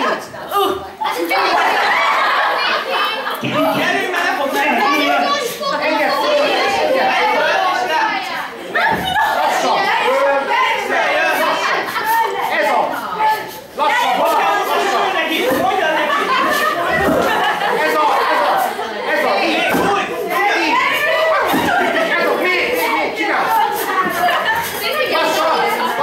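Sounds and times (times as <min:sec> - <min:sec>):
overlapping chatter of voices: 0:00.0 - 0:26.0
people talking and calling out: 0:00.0 - 0:26.0.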